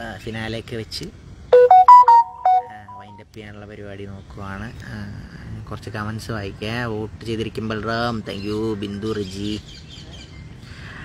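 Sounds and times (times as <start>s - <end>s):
phone ringtone melody: 1.6s - 3.2s.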